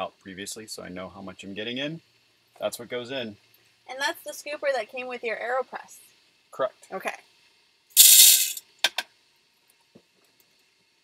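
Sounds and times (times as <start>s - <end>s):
coffee beans rattling into grinder: 8.0s - 8.6s.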